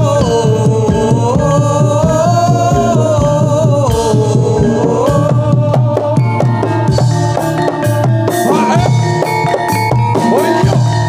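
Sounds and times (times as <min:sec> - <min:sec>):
drum rhythm: 0:00.0 - 0:11.0
ringing metallic percussion: 0:00.0 - 0:11.0.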